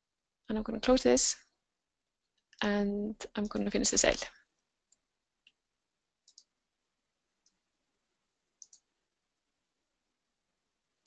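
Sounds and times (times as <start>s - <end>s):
faint computer mouse clicks: 6.2s - 6.5s, 8.6s - 8.9s.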